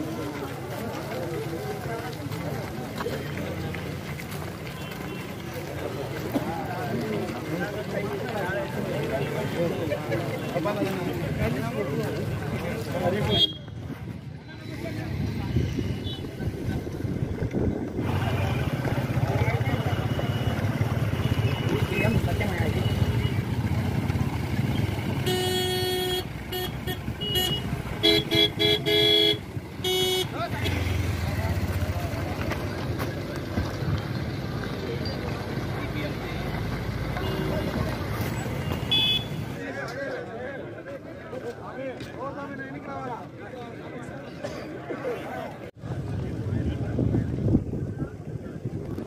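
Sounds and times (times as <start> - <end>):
car horns honking: 24.7 - 31.1, 38.6 - 39.5.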